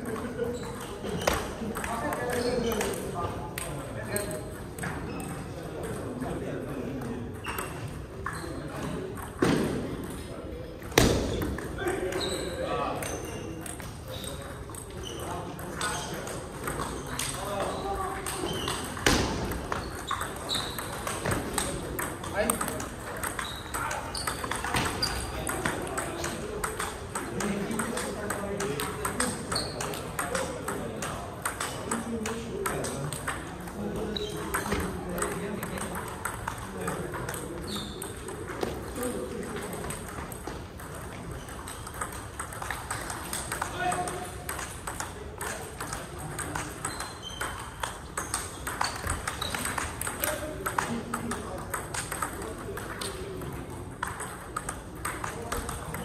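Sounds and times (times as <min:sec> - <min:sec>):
table tennis ball clicking: 0:15.6 - 0:56.0.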